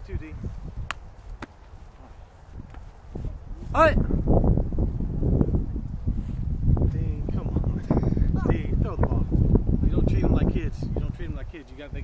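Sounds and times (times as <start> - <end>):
wind on microphone: 0.0 - 12.0.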